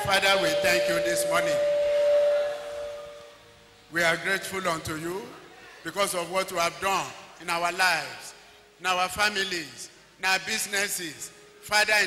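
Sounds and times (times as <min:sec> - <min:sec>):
held musical tone: 0:00.0 - 0:03.6.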